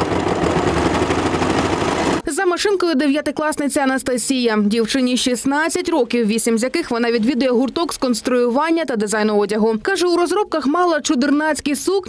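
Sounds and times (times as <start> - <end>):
overlocker whirring: 0.0 - 2.2.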